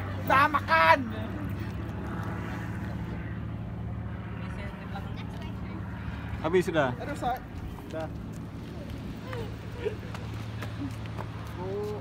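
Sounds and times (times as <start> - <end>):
engine humming steadily: 0.0 - 12.0.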